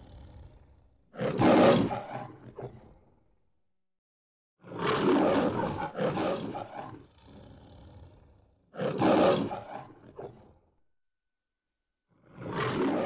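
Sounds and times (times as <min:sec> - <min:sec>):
lion roaring: 0:00.0 - 0:03.0, 0:04.7 - 0:10.6, 0:12.3 - 0:13.0.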